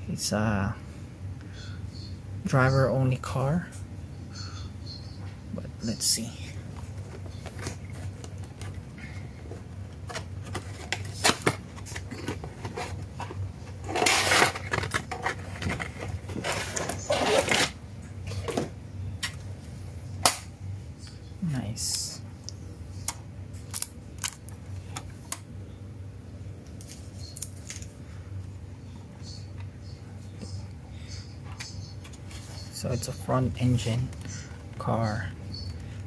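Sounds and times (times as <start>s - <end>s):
packaging rustling: 6.8s - 17.8s
packaging clicks and crinkles: 9.9s - 17.8s, 23.6s - 25.4s.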